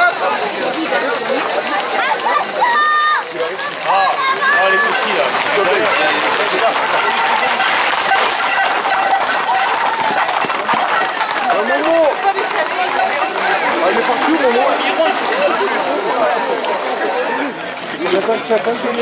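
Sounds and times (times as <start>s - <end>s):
short held calls: 0.0s - 11.5s, 12.1s - 18.9s
crowd talking and calling out: 0.0s - 19.0s.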